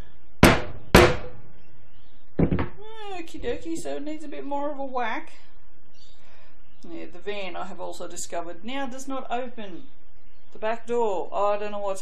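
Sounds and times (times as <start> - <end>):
rubber mallet striking stamp: 0.4 - 1.3.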